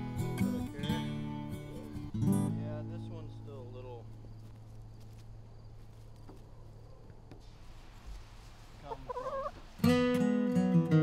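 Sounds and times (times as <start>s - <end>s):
strummed acoustic guitar music: 0.0s - 3.9s, 9.8s - 11.0s
hen calling: 8.7s - 9.8s.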